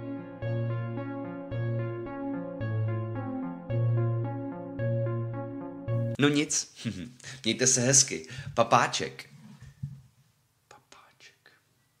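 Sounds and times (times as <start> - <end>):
man whispering faintly: 10.7 - 11.7.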